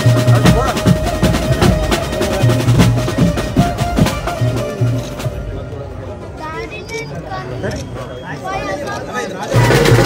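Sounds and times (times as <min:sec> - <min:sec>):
drums beating fast: 0:00.0 - 0:05.6, 0:09.5 - 0:10.0
crowd talking: 0:00.0 - 0:10.0.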